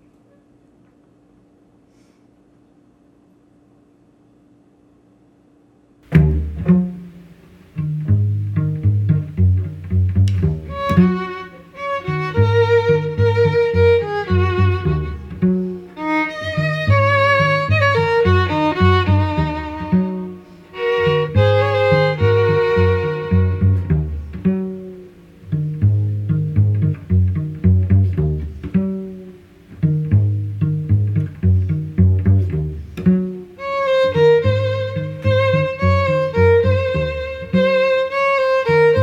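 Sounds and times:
cello low notes: 6.0s - 39.0s
bowed violin melody: 6.1s - 39.0s.

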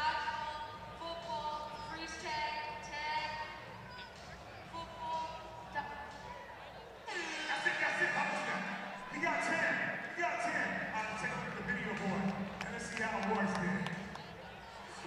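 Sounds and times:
music playing: 0.0s - 15.0s
speech over public address system: 0.0s - 15.0s
man's voice: 7.1s - 14.0s.

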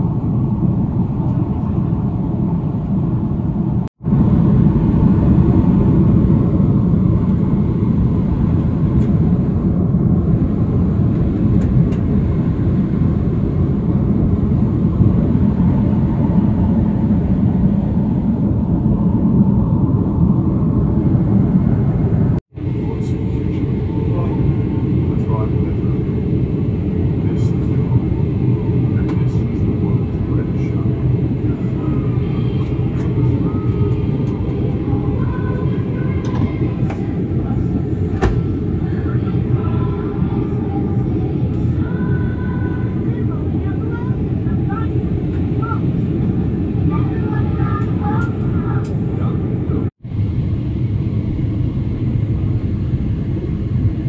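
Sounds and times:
jet engine cabin drone: 0.0s - 54.0s.

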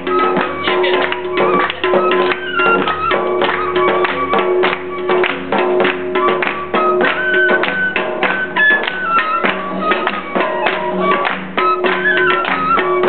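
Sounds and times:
percussion beat: 0.0s - 13.0s
wind instrument melody: 0.0s - 13.0s.

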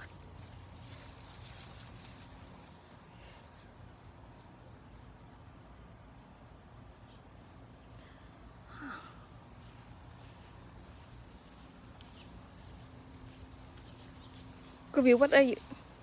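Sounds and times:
insects chirping: 0.0s - 16.0s.

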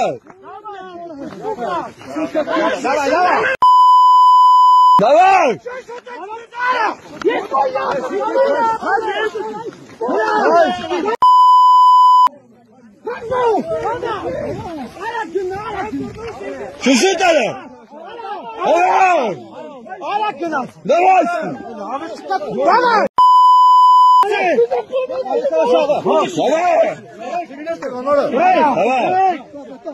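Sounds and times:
censor bleep tone: 3.6s - 5.0s, 11.2s - 12.3s, 23.2s - 24.3s.

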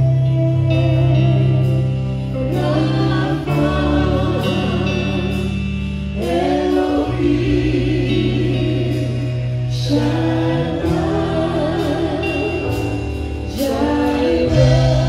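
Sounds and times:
amplified electric guitar: 0.0s - 15.0s
voices singing gospel song: 0.0s - 15.0s.

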